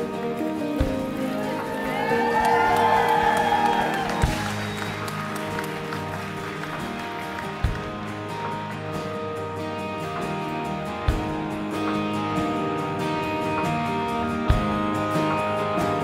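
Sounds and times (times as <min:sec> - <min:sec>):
congregation cheering and clapping: 0:00.0 - 0:08.9
worship music: 0:00.0 - 0:16.0.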